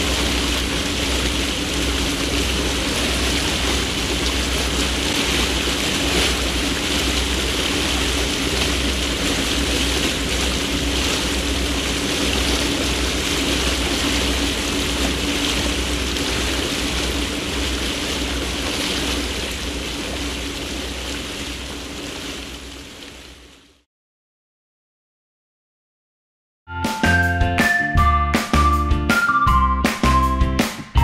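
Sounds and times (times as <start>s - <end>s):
motorboat engine drone: 0.0s - 23.8s
rushing water: 0.0s - 23.8s.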